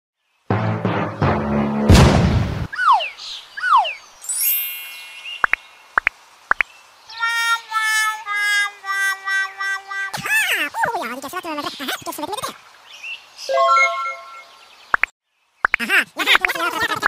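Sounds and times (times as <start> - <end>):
high chime: 4.2 - 5.4.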